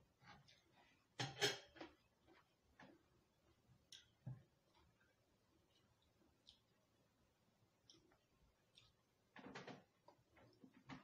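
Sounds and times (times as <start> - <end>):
eating clicks and crackles: 1.7 - 11.0.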